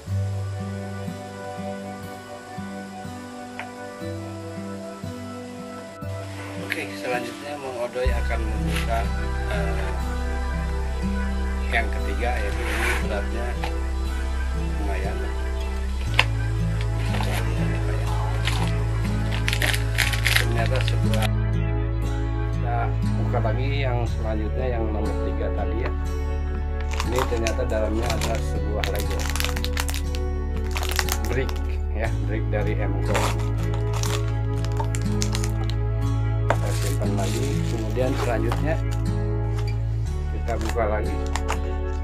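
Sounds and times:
background music with bass line: 0.0s - 42.0s
plastic wrapper crinkling: 16.0s - 21.3s, 26.8s - 31.8s, 33.1s - 35.8s, 36.5s - 39.0s, 40.5s - 41.7s
plastic toy and packaging rustling: 18.4s - 21.3s, 26.8s - 31.6s, 33.1s - 35.8s, 40.6s - 41.6s.

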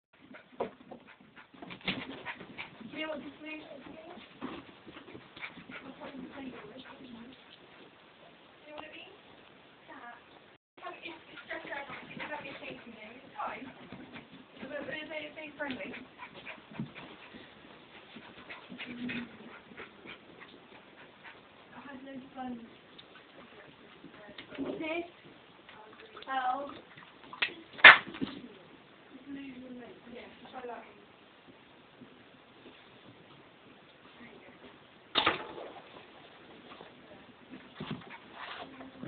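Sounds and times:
dogs play-fighting scuffles: 0.2s - 8.0s, 11.0s - 28.5s, 35.8s - 39.0s.

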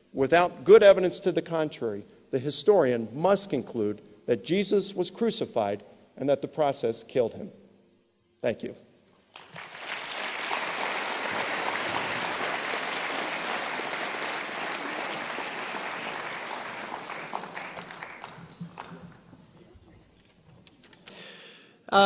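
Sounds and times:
audience applauding: 9.3s - 19.6s.

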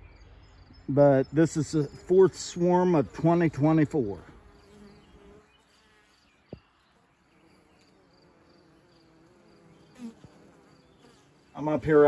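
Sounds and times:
bees buzzing: 1.6s - 12.0s.

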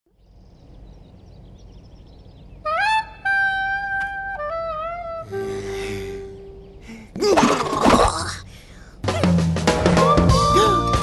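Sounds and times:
steady low tone: 0.1s - 7.2s.

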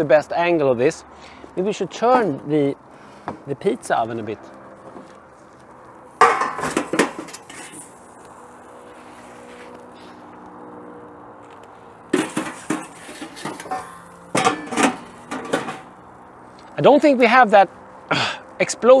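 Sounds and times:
metal clattering and scraping: 6.2s - 8.1s, 12.1s - 16.0s.

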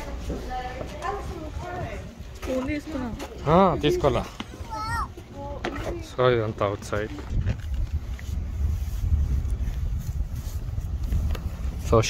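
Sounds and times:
children's voices playing: 4.5s - 6.0s
child's high-pitched call: 4.6s - 5.2s.

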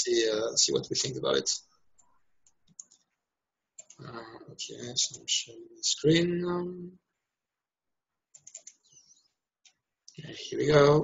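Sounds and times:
faint computer mouse clicks: 8.4s - 9.0s.

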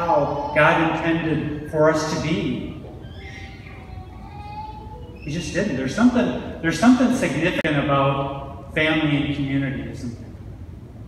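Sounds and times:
low steady hall hum: 0.0s - 11.0s.

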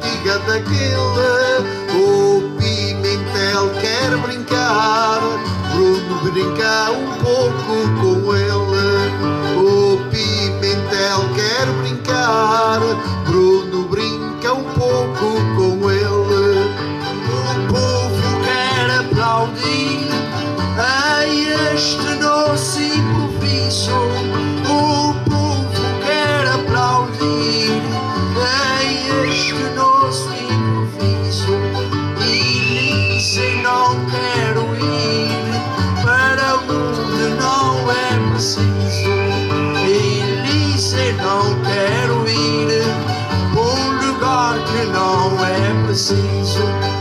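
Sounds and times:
acoustic guitar: 0.0s - 47.0s
small plucked string instruments: 0.0s - 47.0s.

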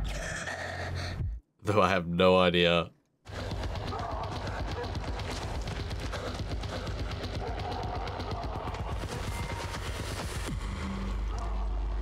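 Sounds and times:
rapid crackling and rattling: 3.3s - 10.7s.

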